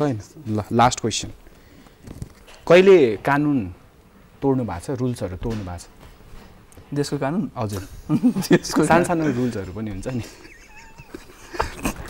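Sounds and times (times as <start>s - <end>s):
man speaking: 6.9s - 10.4s
soft breathy laughs: 8.1s - 12.0s.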